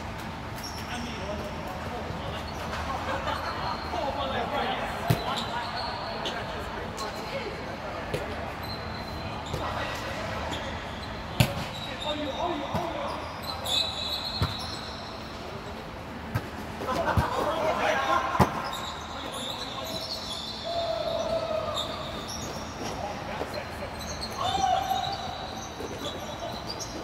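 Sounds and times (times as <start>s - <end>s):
shoes squeaking on court floor: 0.1s - 27.0s
players calling out: 16.7s - 27.0s.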